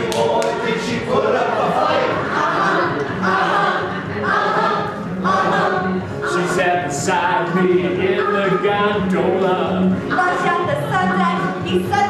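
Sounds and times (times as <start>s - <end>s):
group of people singing: 0.0s - 11.9s.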